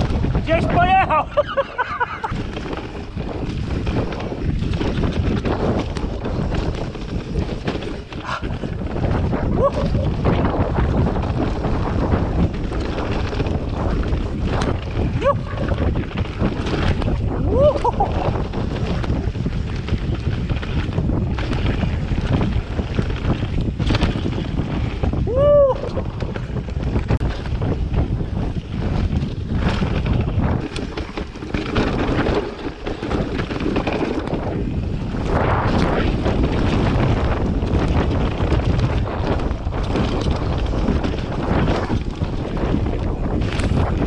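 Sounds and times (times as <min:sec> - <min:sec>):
bike rattling over bumps: 0:00.0 - 0:44.0
bike tyres rolling on dirt trail: 0:00.0 - 0:44.0
wind buffeting microphone: 0:00.0 - 0:44.0.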